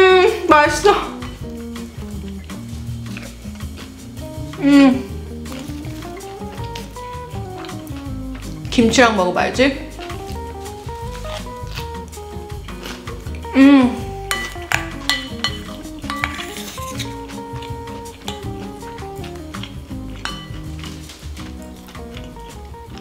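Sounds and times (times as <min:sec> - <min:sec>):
background music with bass line: 0:00.0 - 0:23.0
person eating murmur: 0:01.6 - 0:08.7, 0:09.9 - 0:23.0.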